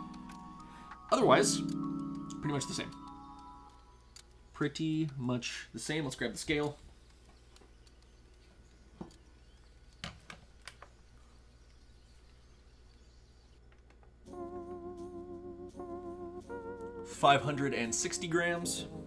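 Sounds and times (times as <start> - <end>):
soft background music: 0.0 - 4.6, 14.1 - 19.0.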